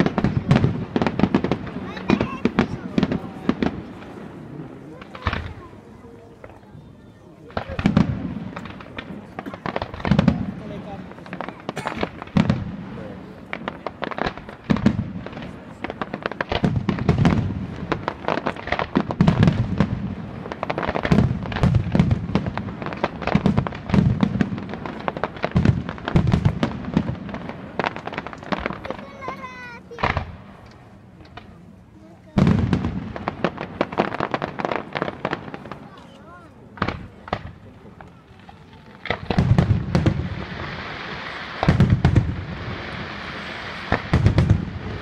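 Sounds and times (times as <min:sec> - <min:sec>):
deep firework booms: 0:00.0 - 0:06.6, 0:07.5 - 0:31.5, 0:32.3 - 0:45.0
fireworks bangs and crackles: 0:00.0 - 0:45.0.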